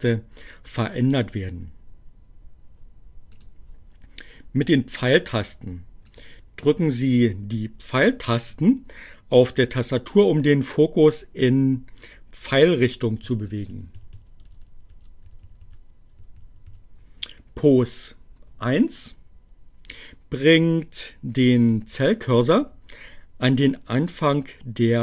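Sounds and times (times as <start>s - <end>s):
computer mouse clicks: 3.3s - 4.2s.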